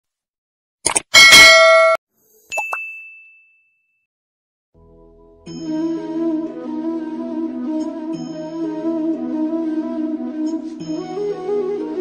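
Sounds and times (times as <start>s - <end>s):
high ding: 1.2s - 4.0s
bright bell-like ringing: 5.5s - 5.9s.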